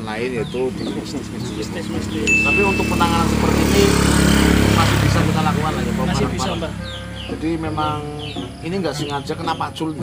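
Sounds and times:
motorcycle engine running: 0.0 - 8.7.

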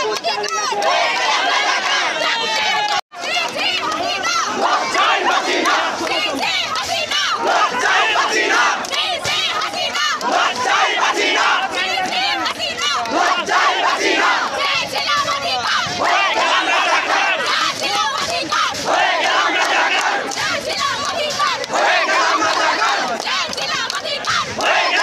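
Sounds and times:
crowd shouting slogans: 0.0 - 25.0.

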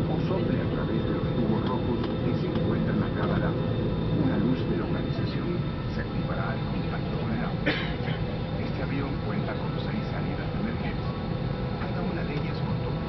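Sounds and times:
airliner cabin hum: 0.0 - 13.0
muffled passenger voices: 0.0 - 13.0.

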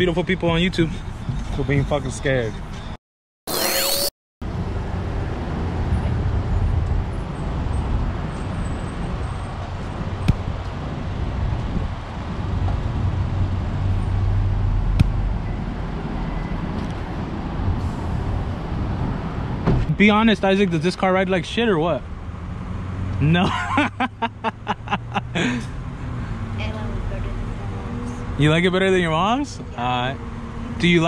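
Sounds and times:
traffic noise: 0.0 - 3.0, 4.4 - 31.0
electronic sweep transition: 3.5 - 4.1.

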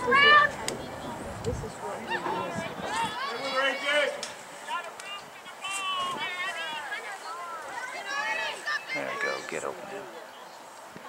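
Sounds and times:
distant voices shouting: 0.0 - 10.6.

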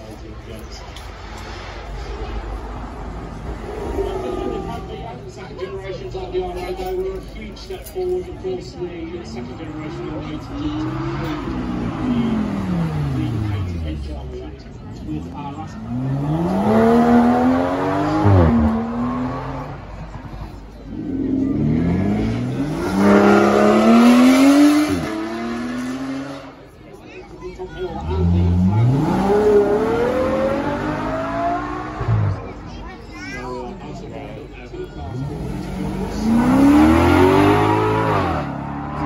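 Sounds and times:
car engines revving hard: 1.0 - 5.4, 9.1 - 26.8, 27.8 - 33.0, 35.0 - 39.0.

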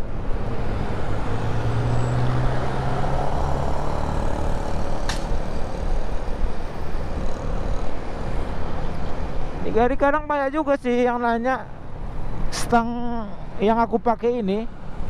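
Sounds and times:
motorcycle engine hum: 0.0 - 9.6
road noise: 0.0 - 15.0.

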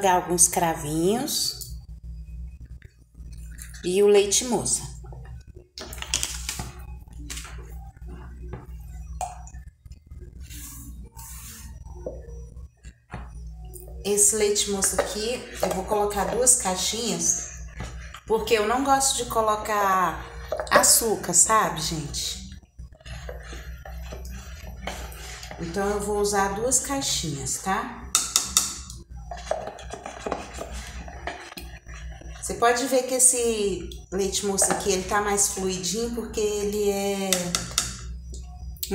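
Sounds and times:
low steady hum: 0.0 - 38.9
clinks and knocks on a metal pot: 28.1 - 30.4, 37.3 - 38.1.

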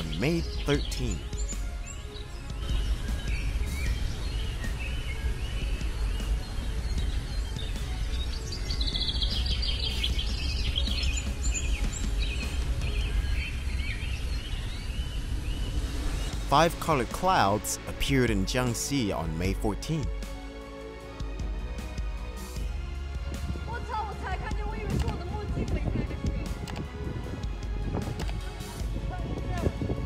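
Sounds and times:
birds chirping: 0.0 - 30.0.

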